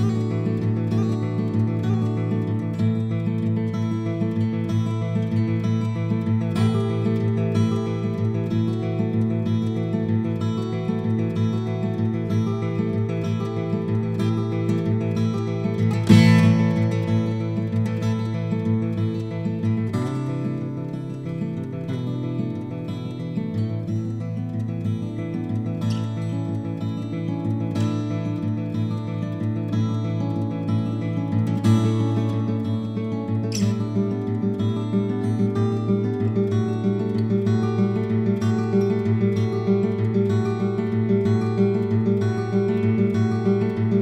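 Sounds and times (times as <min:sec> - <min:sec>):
acoustic guitar playing: 0:00.0 - 0:44.0.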